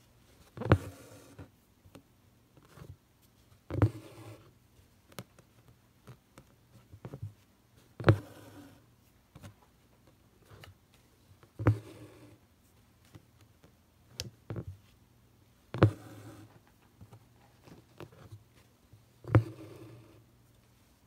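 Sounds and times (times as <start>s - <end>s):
needle tapping taut fabric: 15.7s - 16.2s.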